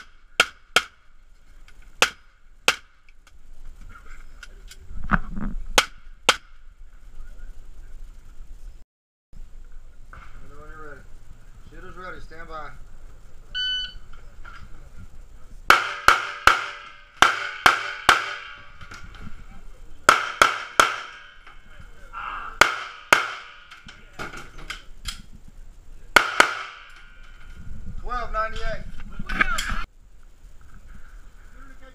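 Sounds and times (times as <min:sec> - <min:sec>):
shot timer beep: 0:13.6 - 0:14.0
handgun shots ringing in metal: 0:20.1 - 0:21.6.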